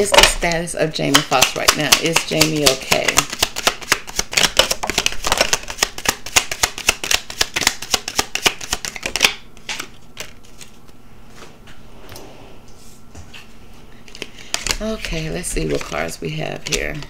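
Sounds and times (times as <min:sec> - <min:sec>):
cards being shuffled: 0:01.0 - 0:11.0, 0:14.0 - 0:17.0.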